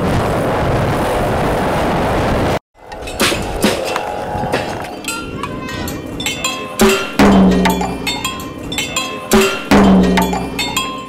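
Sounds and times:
metallic clanks and clinks: 2.9s - 11.0s
deep drum hits: 6.8s - 8.2s, 9.4s - 10.7s.

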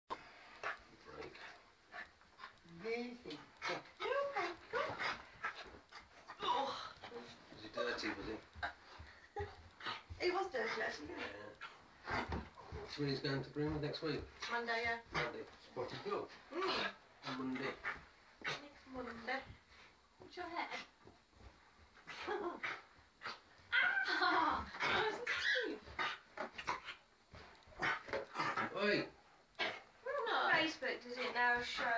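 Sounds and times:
small dog barking and yipping: 23.3s - 27.0s
small dog yipping and whining: 23.7s - 24.1s.

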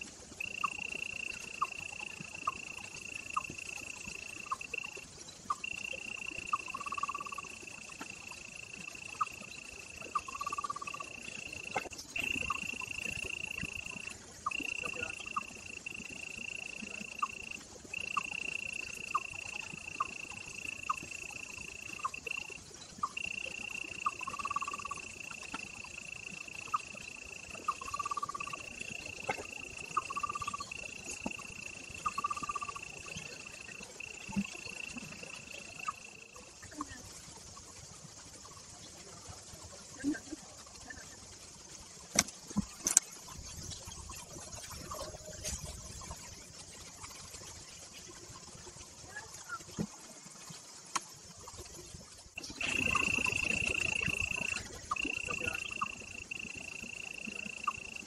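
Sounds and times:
high-pitched insect drone: 0.0s - 42.0s, 42.6s - 58.0s.

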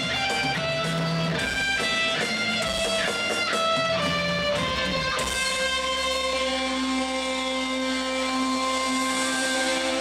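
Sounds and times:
electric guitar and keyboard chord: 0.0s - 10.0s.

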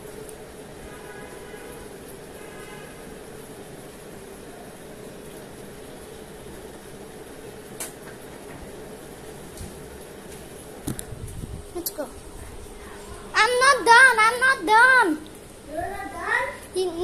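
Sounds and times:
ceiling fan humming: 0.0s - 17.0s.

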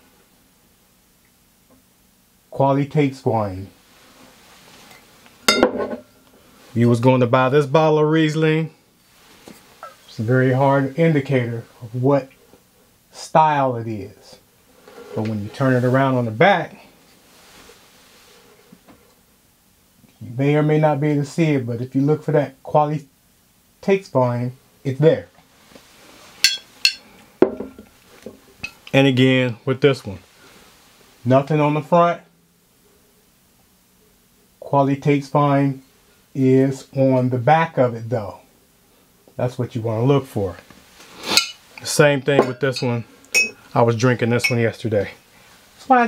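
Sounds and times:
bottle set down on table: 5.5s - 6.0s, 27.4s - 28.4s
glass bottle clinking: 5.5s - 6.0s, 26.4s - 27.8s, 41.3s - 41.6s, 42.4s - 43.6s, 44.4s - 44.7s.

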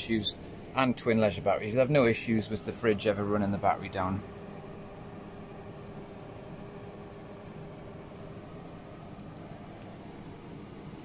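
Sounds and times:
faint constant whine: 0.0s - 11.0s
steady hum: 0.0s - 11.0s.

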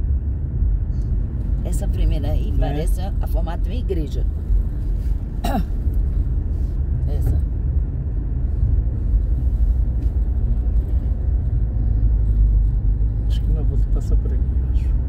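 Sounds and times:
car engine and tyre noise: 0.0s - 15.0s.

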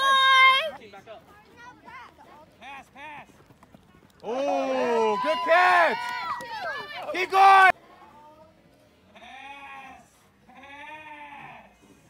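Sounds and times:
distant people shouting: 4.2s - 7.7s.

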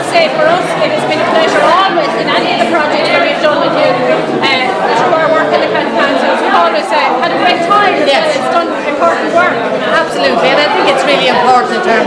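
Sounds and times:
women talking: 0.0s - 11.4s
crowd chatter: 0.0s - 12.0s.

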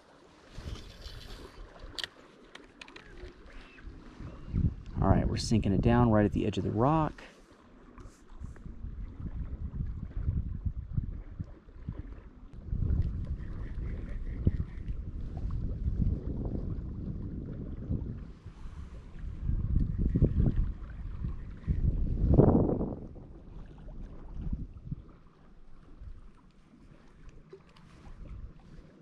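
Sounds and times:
wind buffeting microphone: 0.5s - 2.1s, 3.0s - 7.1s, 8.3s - 27.3s, 27.9s - 29.0s.

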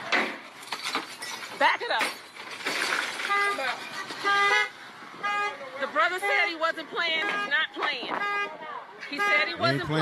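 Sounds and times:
car horn honking: 3.2s - 10.0s.

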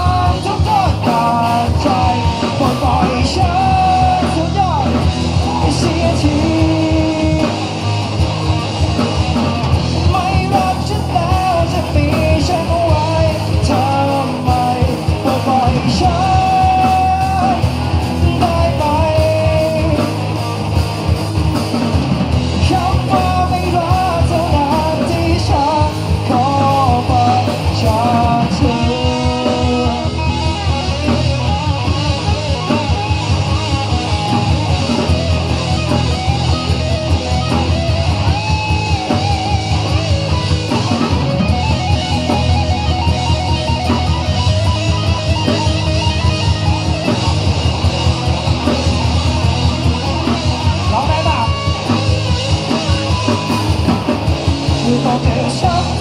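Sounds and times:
man singing long notes: 0.0s - 7.7s, 10.0s - 20.2s, 22.6s - 30.9s, 54.7s - 56.0s
bass guitar: 0.0s - 56.0s
drums: 0.0s - 56.0s
electric guitar bending notes: 0.0s - 56.0s
live rock band playing: 0.0s - 56.0s
strummed guitar: 0.0s - 56.0s.

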